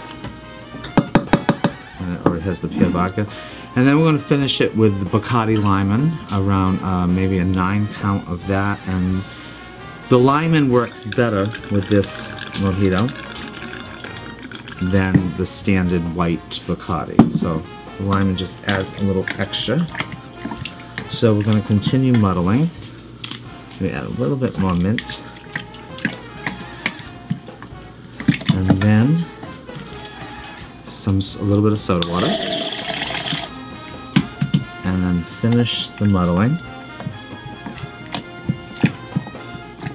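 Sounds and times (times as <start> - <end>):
background music: 0.0 - 39.9
sharp knocks: 0.9 - 1.9
liquid pouring into metal tin: 10.9 - 15.4, 32.0 - 33.6.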